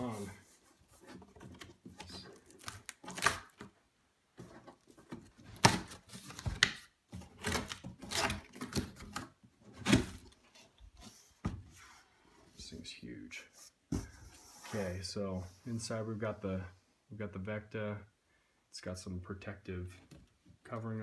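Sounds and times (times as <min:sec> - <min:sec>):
sharp cardboard cracks: 0:02.0 - 0:03.7, 0:05.4 - 0:10.3.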